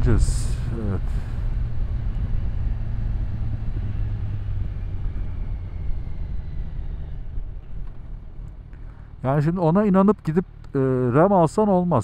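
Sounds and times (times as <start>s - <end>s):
wind noise: 0.0s - 8.9s
motorcycle engine running: 0.0s - 11.6s
road noise: 0.0s - 12.0s.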